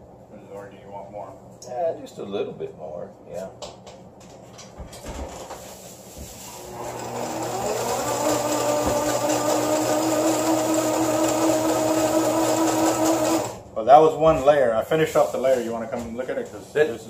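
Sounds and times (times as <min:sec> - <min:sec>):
reel spooling whir: 0:06.6 - 0:13.6.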